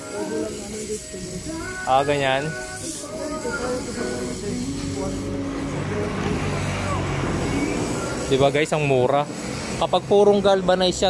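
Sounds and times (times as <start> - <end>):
vehicle engine running: 4.5 - 10.7.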